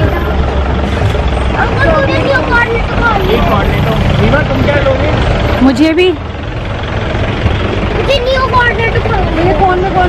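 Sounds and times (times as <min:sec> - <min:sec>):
traffic rumble: 0:00.0 - 0:10.0.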